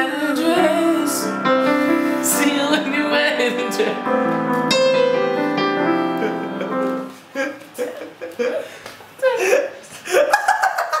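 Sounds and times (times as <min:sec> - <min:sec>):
young man laughing: 0:06.2 - 0:11.0.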